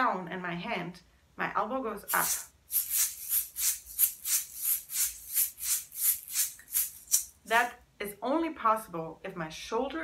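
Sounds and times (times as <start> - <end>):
shaker rattling: 2.1 - 7.7.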